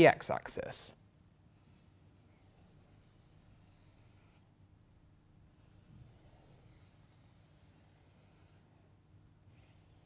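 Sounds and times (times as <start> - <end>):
marker scratching on whiteboard: 1.5 - 4.4, 5.5 - 8.7, 9.5 - 10.0.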